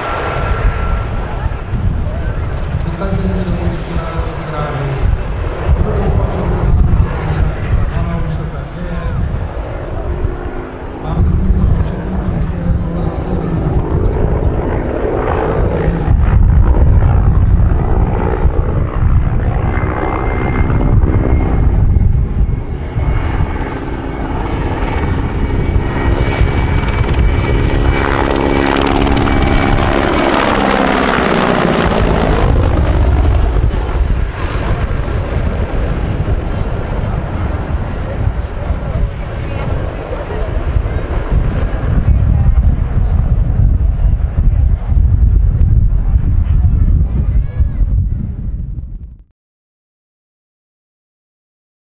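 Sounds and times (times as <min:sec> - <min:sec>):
swirling sweeping tone: 0:00.0 - 0:02.5
helicopter rotor chopping: 0:00.0 - 0:49.1
turbine engine whine: 0:00.0 - 0:49.2.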